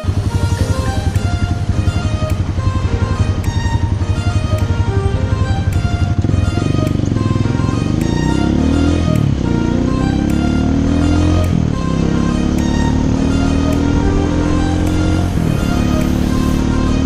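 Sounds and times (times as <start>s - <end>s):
background music with steady beat: 0.0s - 17.0s
motorcycle engine accelerating: 0.0s - 17.0s.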